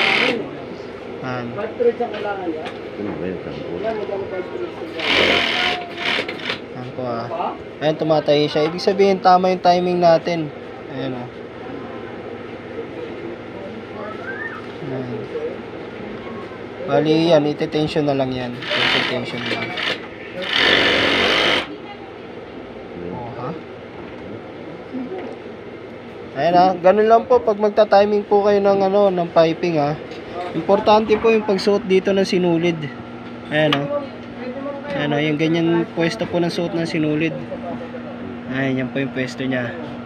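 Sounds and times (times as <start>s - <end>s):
sewing machine stitching: 4.9s - 6.6s, 18.6s - 21.7s.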